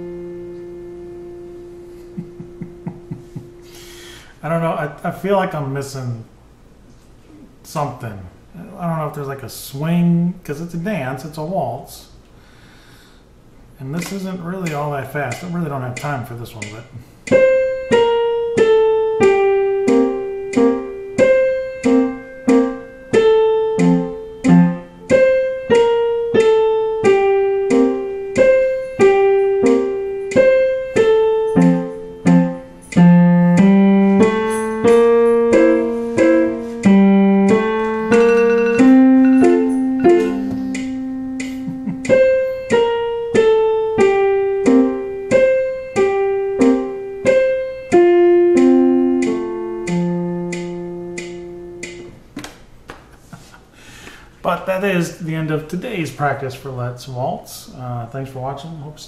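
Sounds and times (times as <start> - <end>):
digital piano waltz: 0.0 - 4.9, 16.6 - 52.4.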